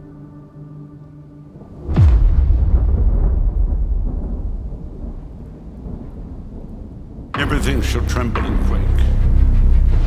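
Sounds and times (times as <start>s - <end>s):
low rumble of thunder: 1.6s - 10.0s.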